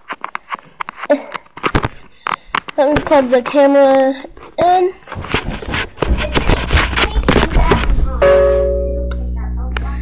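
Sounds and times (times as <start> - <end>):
camera clicking and rustling: 0.0 - 4.6
held ringing tone: 8.2 - 9.6.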